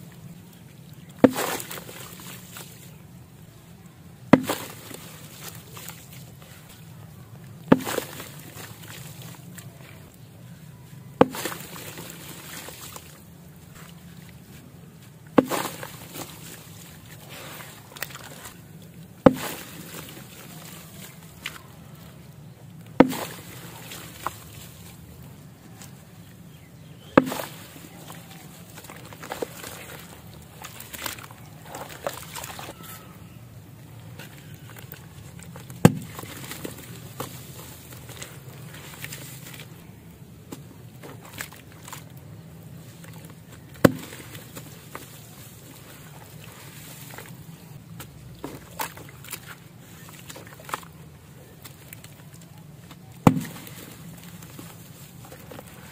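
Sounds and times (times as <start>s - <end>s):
low steady hum: 0.0s - 55.9s
wet clay squelching and splashing: 0.0s - 55.9s
crumbs pattering into water: 1.0s - 3.0s, 11.2s - 26.2s, 27.2s - 33.0s, 33.8s - 55.9s
dirt smashed into water splash: 1.2s - 2.8s, 4.2s - 6.0s, 7.6s - 9.4s, 11.2s - 13.1s, 15.3s - 18.5s, 19.2s - 21.6s, 23.0s - 24.9s, 27.2s - 28.1s, 35.6s - 39.7s, 43.2s - 45.2s, 52.9s - 54.8s.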